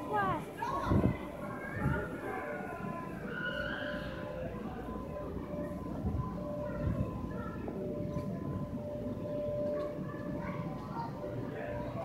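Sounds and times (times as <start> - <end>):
background chatter of kids playing: 0.0 - 12.0
children calling: 0.0 - 12.0.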